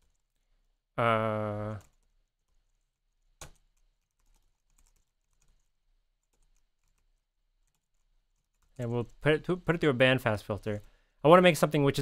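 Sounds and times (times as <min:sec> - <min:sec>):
typing on computer keyboard: 0:01.7 - 0:09.2.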